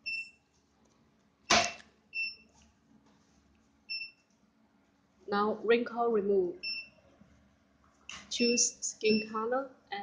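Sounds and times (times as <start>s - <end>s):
loud sharp snap: 1.5s - 1.9s.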